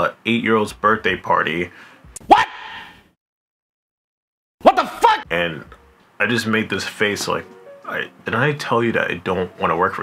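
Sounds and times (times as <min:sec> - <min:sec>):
man exclaiming: 0:04.6 - 0:05.3.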